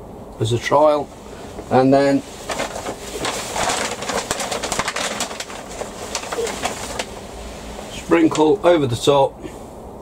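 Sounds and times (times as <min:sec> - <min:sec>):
plastic pots rustling and clicking: 0:01.5 - 0:08.6.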